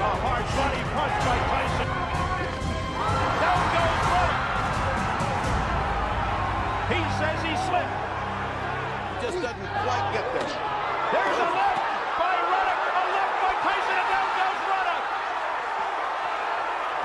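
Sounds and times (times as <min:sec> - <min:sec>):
background music: 0:00.0 - 0:12.2
arena crowd noise: 0:00.0 - 0:17.0.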